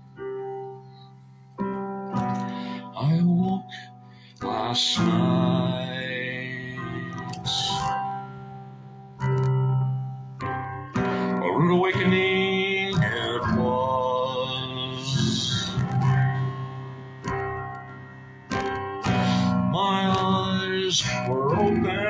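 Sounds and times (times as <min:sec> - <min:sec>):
man singing a slow song: 0:02.4 - 0:08.1, 0:11.0 - 0:16.6, 0:19.1 - 0:22.0
guitar strumming: 0:04.4 - 0:22.0.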